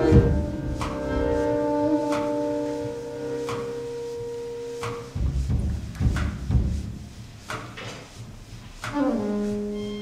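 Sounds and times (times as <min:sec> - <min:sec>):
sustained pure note: 0:00.0 - 0:05.3.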